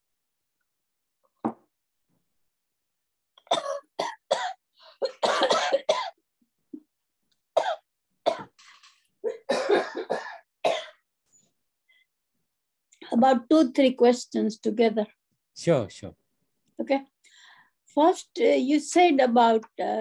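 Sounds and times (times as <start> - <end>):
woman coughing: 3.5 - 6.2, 7.6 - 8.5, 9.3 - 11.0.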